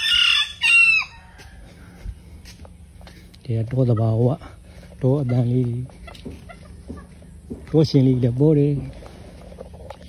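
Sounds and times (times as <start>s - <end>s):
rooster crowing: 0.0s - 2.2s.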